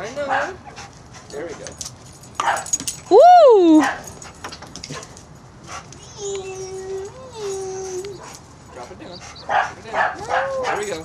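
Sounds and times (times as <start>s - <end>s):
dog whining: 6.0s - 8.4s, 9.0s - 11.0s.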